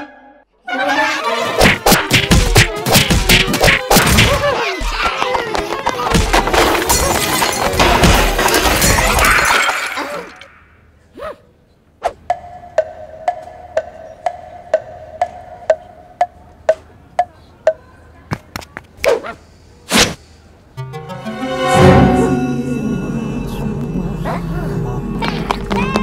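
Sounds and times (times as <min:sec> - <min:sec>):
steady ticking: 0:12.2 - 0:17.9.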